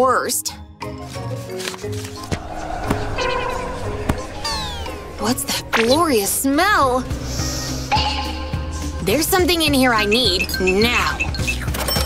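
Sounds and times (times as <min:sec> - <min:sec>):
background music: 0:00.0 - 0:12.0
falling whistle-like glide: 0:02.2 - 0:06.6.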